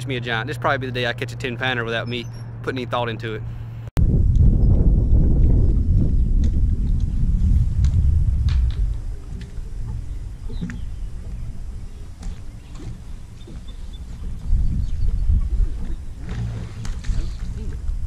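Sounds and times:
wind rumble on microphone: 4.0 - 18.0.

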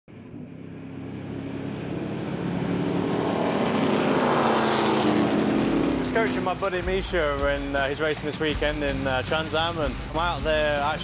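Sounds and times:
race car engines passing by: 0.2 - 11.0.

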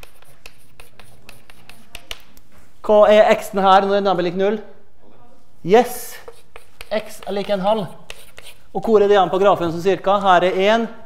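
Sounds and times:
chalk tapping on blackboard: 0.0 - 2.4, 6.1 - 9.0
man talking: 2.8 - 8.0, 8.7 - 11.0.

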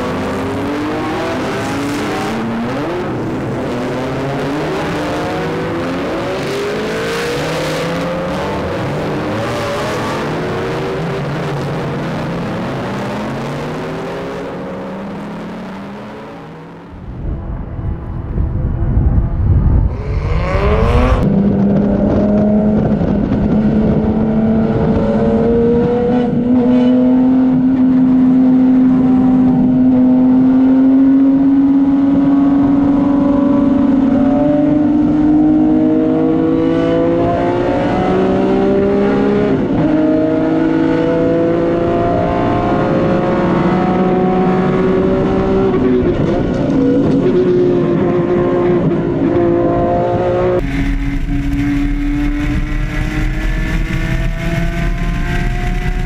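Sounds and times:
race car engine revving: 19.8 - 56.0.

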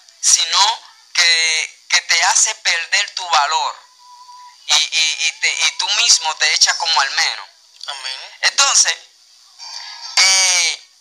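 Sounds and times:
soft murmur: 9.2 - 11.0.

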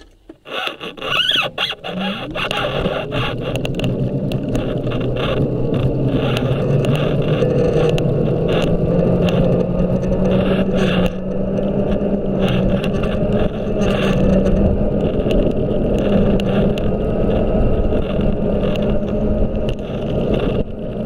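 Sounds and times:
scooter motor hum: 0.0 - 21.0
wheels rumbling on road: 0.0 - 21.0.

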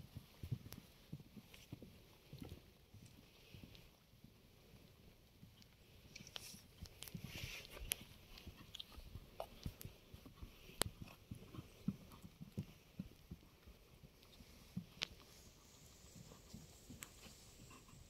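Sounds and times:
horse hooves on sand: 6.4 - 18.0.

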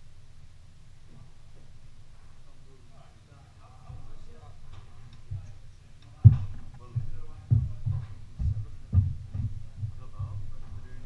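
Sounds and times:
deep regular thuds: 3.8 - 11.0.

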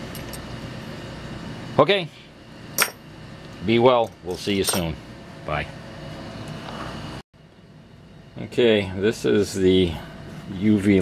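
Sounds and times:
steady low hum: 0.0 - 11.0
man speaking: 8.4 - 11.0.

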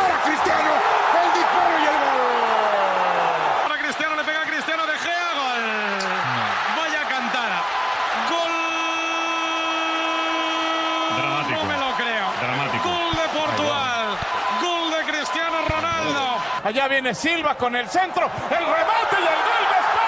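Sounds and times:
commentators shouting: 0.0 - 20.0
stadium crowd noise: 0.0 - 20.0.

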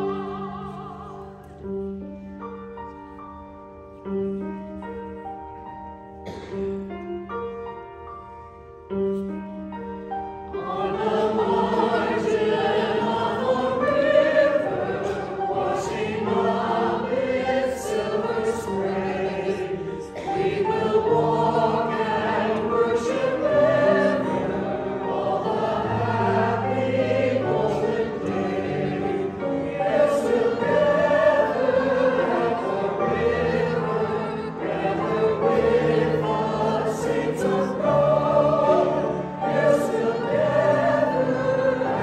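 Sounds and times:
church choir singing: 0.0 - 2.3, 6.2 - 6.8, 10.1 - 42.0
piano accompaniment: 0.0 - 42.0.

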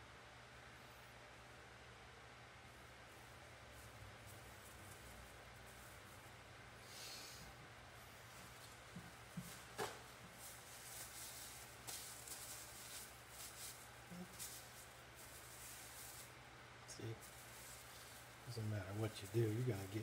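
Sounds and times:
low steady hum: 0.0 - 20.0
paper towel and gloves rustling: 3.0 - 6.7, 8.0 - 20.0.

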